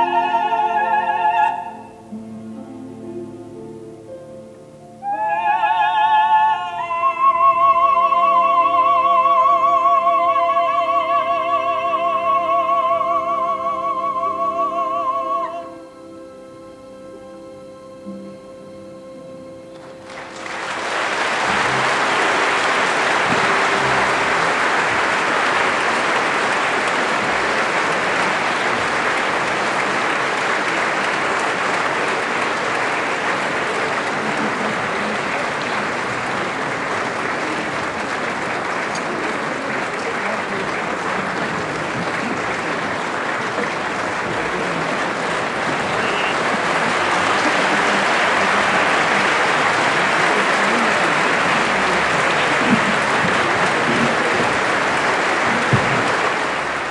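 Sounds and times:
audience applauding: 19.7s - 56.9s.

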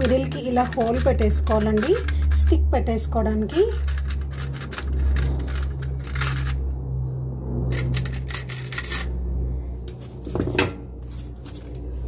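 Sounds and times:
aluminium foil crinkling: 0.0s - 2.5s
steady low hum: 0.0s - 12.0s.

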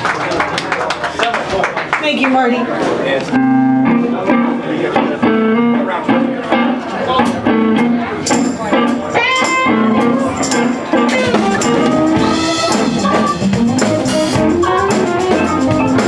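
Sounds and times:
bass: 3.3s - 16.0s
electric guitar riff: 3.3s - 16.0s
drum kit: 3.9s - 16.0s
cymbals: 9.2s - 16.0s.

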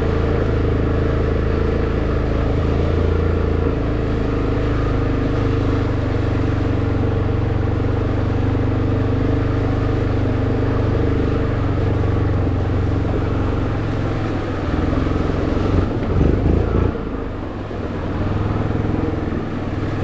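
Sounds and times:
atv engine running: 0.0s - 20.0s.

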